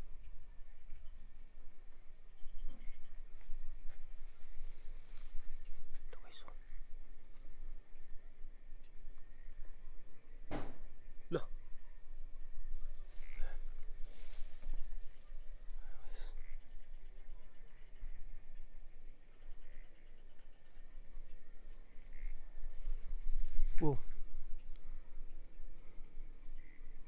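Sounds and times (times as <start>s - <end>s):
crickets chirping: 0.0s - 27.0s.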